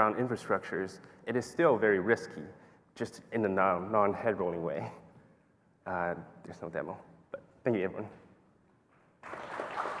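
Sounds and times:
audience applause: 9.2 - 10.0.

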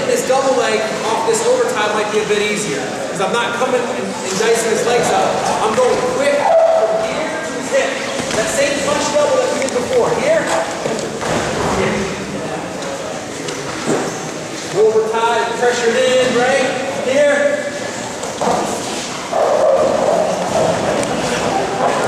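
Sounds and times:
indistinct voices echoing: 0.0 - 22.0.

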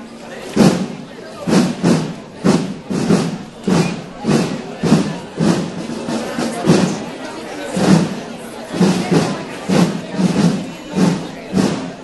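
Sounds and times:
murmur of crowd voices: 0.0 - 12.0
rhythmic thuds: 0.5 - 12.0.

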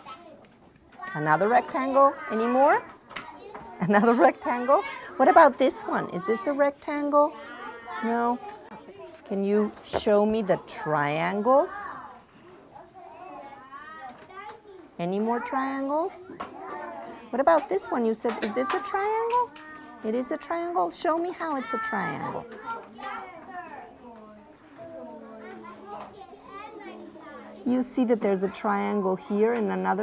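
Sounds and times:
children chattering: 0.0 - 30.0.

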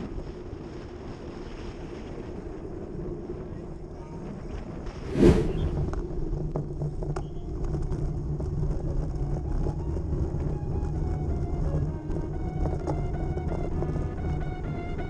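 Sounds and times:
wind and road rumble: 0.0 - 15.0
loud whoosh: 5.0 - 6.2.

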